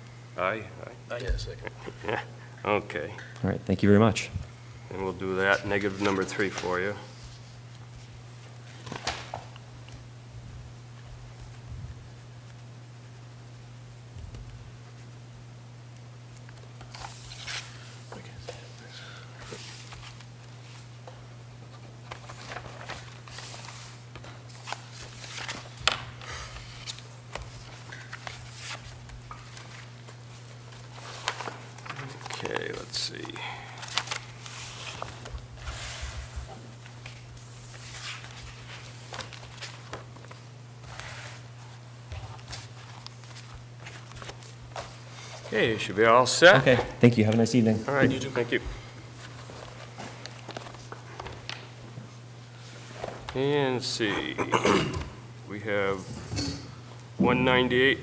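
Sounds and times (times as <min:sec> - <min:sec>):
steady low hum: 0:00.0 - 0:58.0
papers shuffling: 0:05.4 - 0:09.6, 0:16.4 - 0:18.8, 0:19.4 - 0:45.8, 0:46.6 - 0:53.4.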